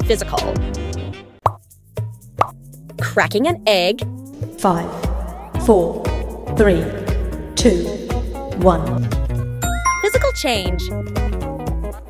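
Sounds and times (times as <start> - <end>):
background music: 9.6 - 11.7.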